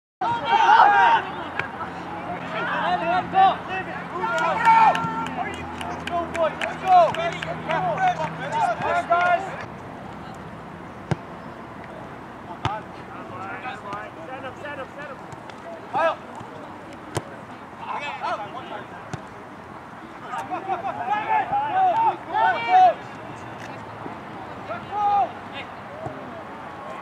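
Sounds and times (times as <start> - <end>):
players shouting: 0.2 - 9.7, 12.6 - 19.2, 20.2 - 23.4, 24.6 - 27.0
ball being kicked: 11.1 - 11.3.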